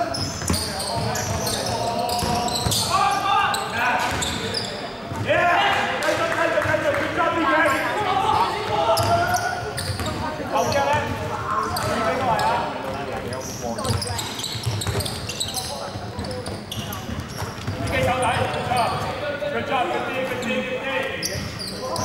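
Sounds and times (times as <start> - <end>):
basketball bouncing on wooden court: 0.0 - 2.9, 13.8 - 19.1
sneaker squeaks: 0.0 - 5.3, 7.6 - 19.3, 20.2 - 22.0
players calling out: 0.0 - 22.0.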